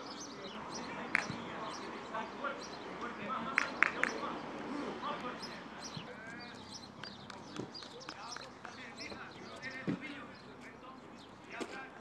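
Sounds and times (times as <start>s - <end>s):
footballers calling: 0.0s - 12.0s.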